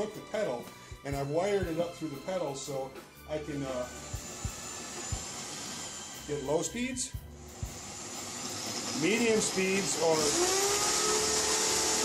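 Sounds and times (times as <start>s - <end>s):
electric drill whirring: 3.5s - 12.0s.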